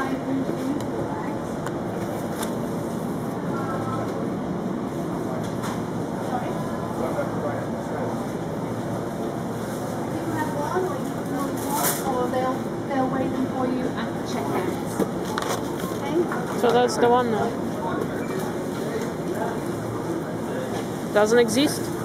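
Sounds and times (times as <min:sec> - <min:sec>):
faint indistinct voices: 0:00.0 - 0:22.0
steady hum and noise: 0:00.0 - 0:22.0.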